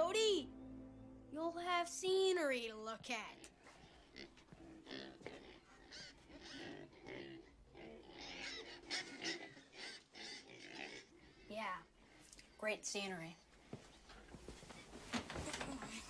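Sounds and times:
pigs grunting: 3.3 - 12.3.

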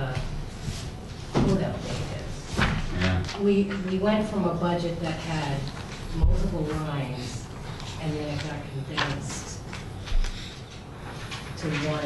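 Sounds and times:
people talking: 0.0 - 0.3, 1.4 - 9.6, 11.6 - 12.0.

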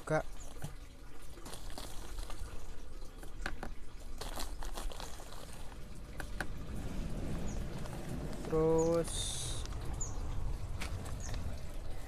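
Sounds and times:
plastic bag crinkling: 1.2 - 8.7.

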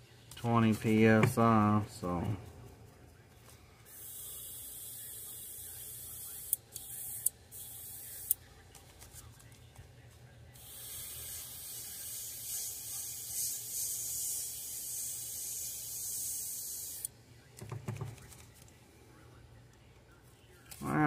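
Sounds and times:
airbrush spraying hiss: 3.9 - 8.4, 10.6 - 17.1
faint low hum: 17.1 - 21.0.

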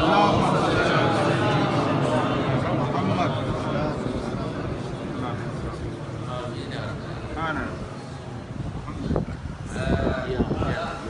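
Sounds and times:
crowd murmur of men's voices: 0.0 - 11.0.

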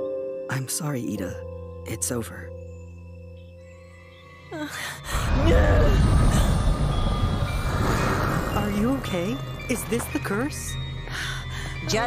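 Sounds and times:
low rumbling cartoon sound effect: 5.1 - 8.6.

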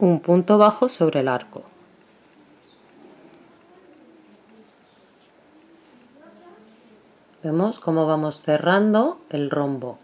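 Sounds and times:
bird cooing: 1.4 - 7.4.

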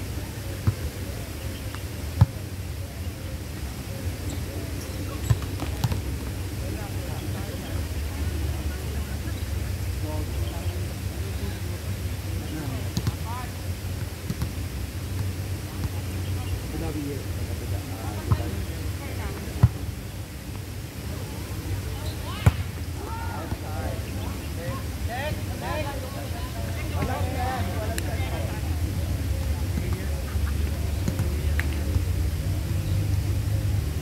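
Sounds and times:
faint players' voices: 0.0 - 34.0.

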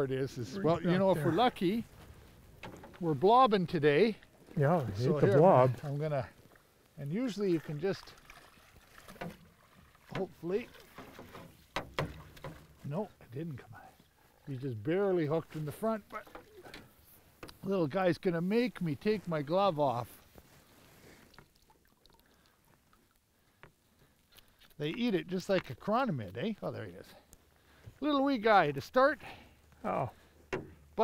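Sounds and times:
water lapping at hull: 4.0 - 12.8.

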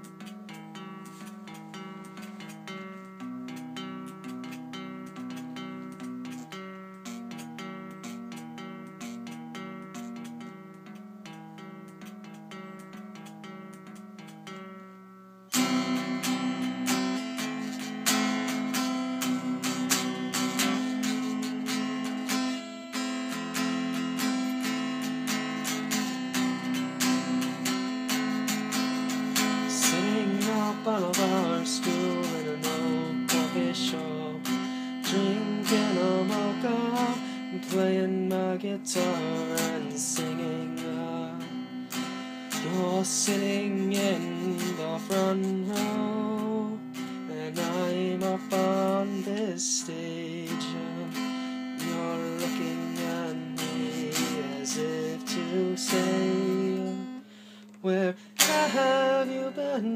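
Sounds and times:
guitar picked notes: 0.0 - 59.9
guitar strummed chords: 0.0 - 59.9.

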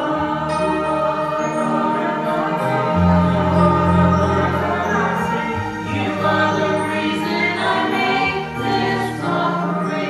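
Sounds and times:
mixed choir singing a hymn: 0.0 - 10.0.

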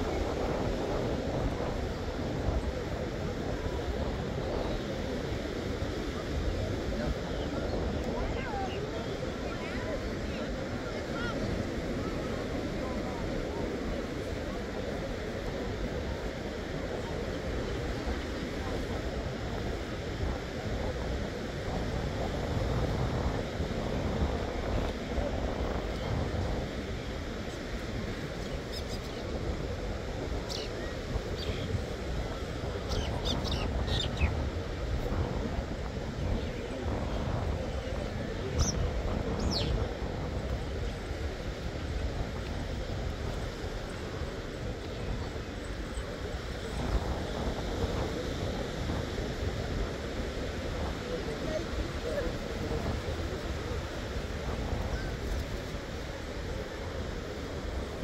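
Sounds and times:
wind and surf rushing: 0.0 - 58.0.

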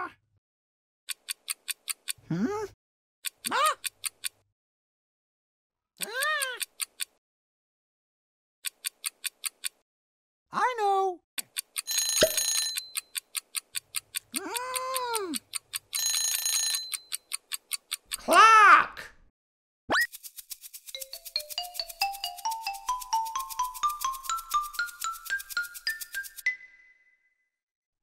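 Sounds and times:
rapid clock ticking: 1.1 - 2.2, 3.2 - 4.4, 6.4 - 7.2, 8.6 - 9.8, 11.4 - 18.3, 20.1 - 26.4
cartoon voice exclamations: 3.5 - 3.8, 6.0 - 6.6, 10.5 - 11.2, 14.4 - 15.4, 18.2 - 19.1
alarm clock bell ringing: 11.9 - 13.0, 16.0 - 17.2
rising xylophone-like notes: 21.0 - 27.1.

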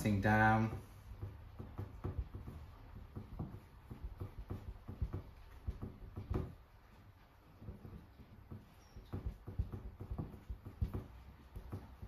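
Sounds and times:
damp cloth tapping and rubbing: 0.0 - 12.0.

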